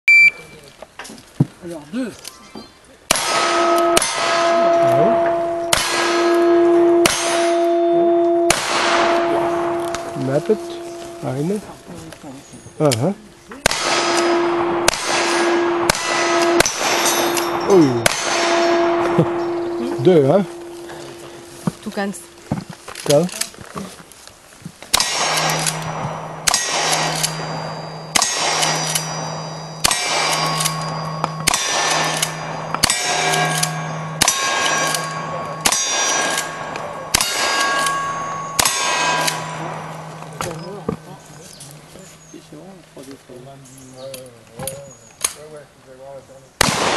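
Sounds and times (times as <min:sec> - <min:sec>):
rifle shots: 0:03.1 - 0:07.8, 0:08.5 - 0:11.2, 0:13.6 - 0:19.8, 0:24.9 - 0:40.3, 0:46.6 - 0:46.9
steel target ringing: 0:03.1 - 0:11.8, 0:13.6 - 0:22.6, 0:24.9 - 0:41.6
handgun shots: 0:05.7 - 0:06.4, 0:13.7 - 0:19.4, 0:24.9 - 0:27.6, 0:46.6 - 0:46.9.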